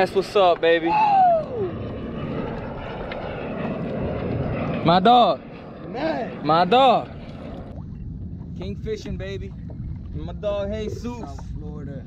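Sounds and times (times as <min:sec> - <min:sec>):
man saying ooh: 0:00.8 - 0:01.7
wind and water rushing: 0:04.0 - 0:12.0.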